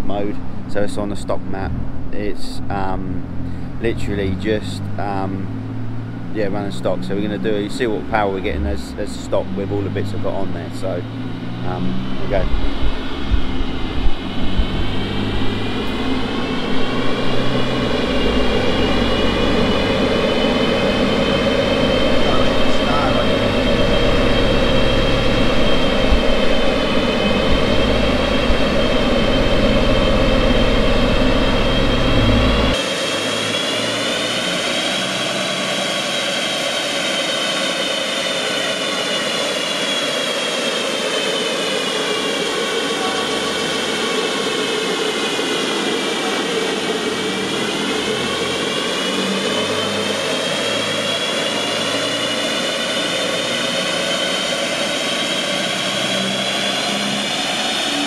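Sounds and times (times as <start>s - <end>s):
car engine droning on a dyno: 0.0s - 58.0s
cooling fan whine: 0.0s - 58.0s.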